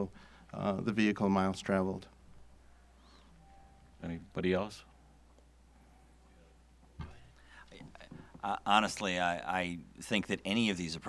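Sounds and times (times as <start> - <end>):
soft bump: 6.9 - 8.4.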